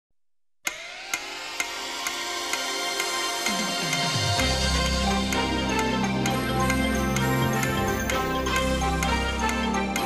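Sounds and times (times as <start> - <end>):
electronic game show theme music: 0.7 - 10.0.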